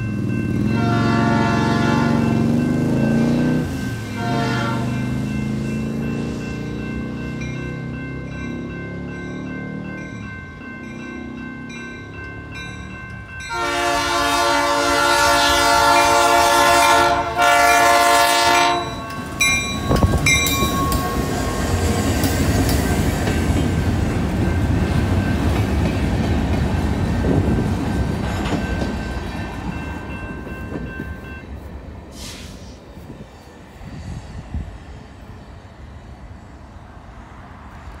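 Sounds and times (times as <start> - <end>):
crossing bell ringing: 0.0 - 31.9
freight train rumbling past: 0.0 - 38.0
locomotive air horn: 0.7 - 2.5, 4.0 - 5.1, 13.5 - 19.1.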